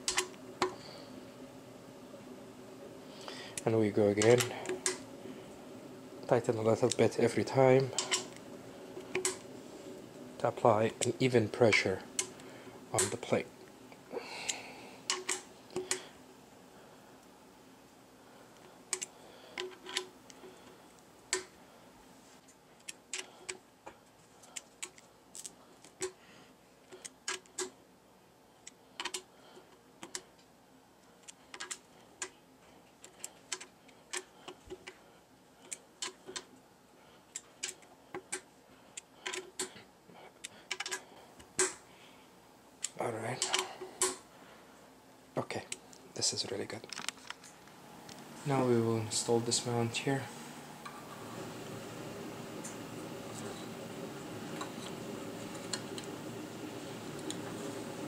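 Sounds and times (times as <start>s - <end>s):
allen key clicking in screws: 18.9s - 20.1s.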